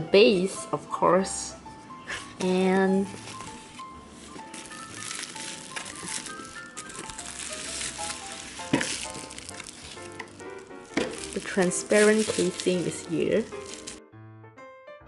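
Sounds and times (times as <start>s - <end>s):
light plinking background music: 0.0s - 14.0s
bubble wrap crinkling: 2.2s - 14.0s.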